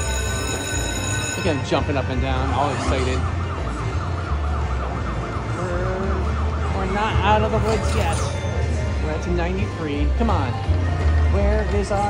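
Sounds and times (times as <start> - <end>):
slot machine jackpot warbling tone: 0.0 - 3.6, 6.0 - 10.5.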